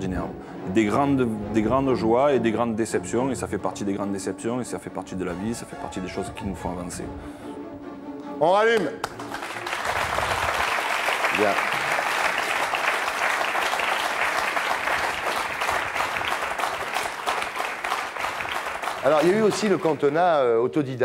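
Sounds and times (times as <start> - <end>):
audience applauding: 8.8 - 21.0.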